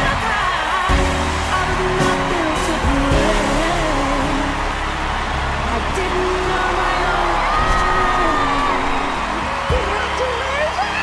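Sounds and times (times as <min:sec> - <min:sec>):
audience cheering and applauding: 0:00.0 - 0:11.0
music playing: 0:00.0 - 0:11.0.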